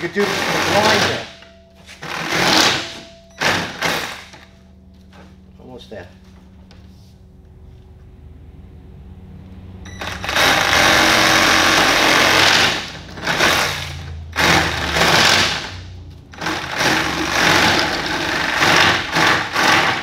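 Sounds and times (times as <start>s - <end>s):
rotary tool cutting plastic pipe: 16.4s - 20.0s.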